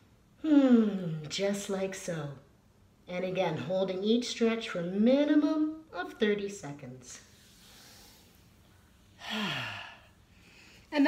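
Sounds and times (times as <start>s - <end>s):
woman sighing: 9.2s - 10.1s.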